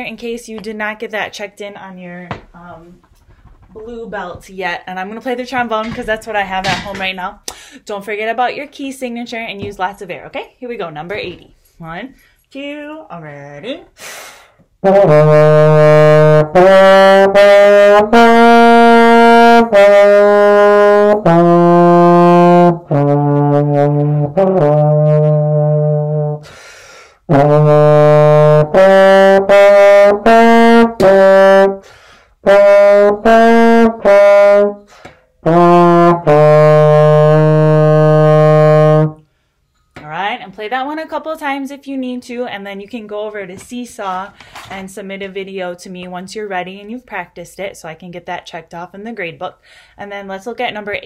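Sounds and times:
player breathing: 7.5 - 7.8, 26.4 - 27.2, 31.8 - 32.4, 49.6 - 50.0
slide trombone playing low notes: 14.8 - 26.5, 27.3 - 31.8, 32.4 - 39.2.

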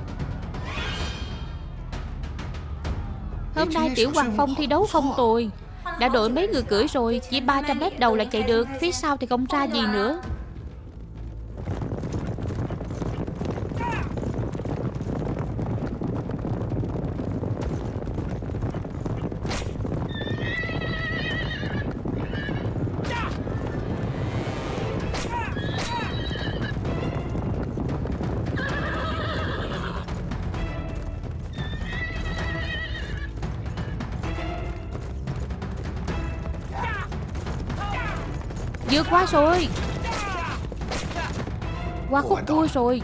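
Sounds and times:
hooves galloping on turf: 3.6 - 43.0
horse whinnying: 20.0 - 23.9, 25.1 - 26.8, 28.6 - 30.1, 31.5 - 33.9.

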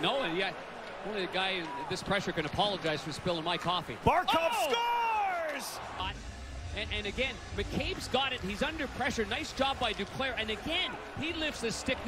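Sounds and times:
arena crowd rumble: 0.0 - 12.0.

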